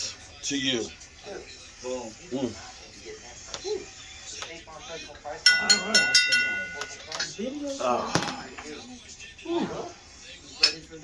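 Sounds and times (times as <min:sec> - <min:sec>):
glasses clinking: 0:05.4 - 0:07.5.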